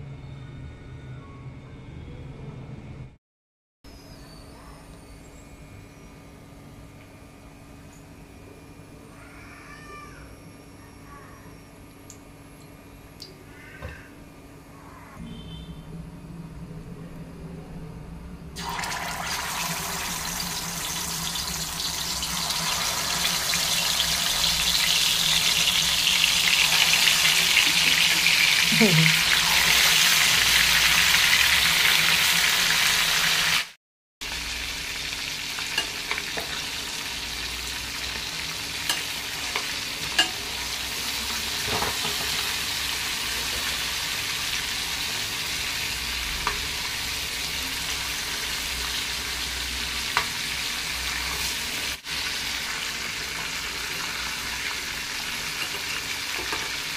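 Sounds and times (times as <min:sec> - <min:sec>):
chicken sizzling in hot oil: 0:18.6 - 0:56.9.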